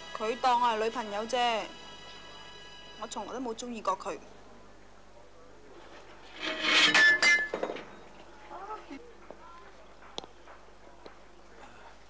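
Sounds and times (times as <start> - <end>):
ceramic teapot shattering: 6.7 - 8.0.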